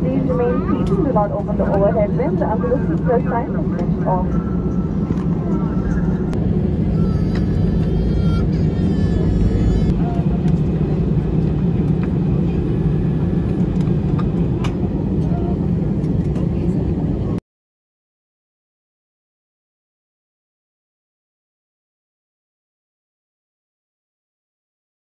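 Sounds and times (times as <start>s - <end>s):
airliner engine drone: 0.0s - 17.4s.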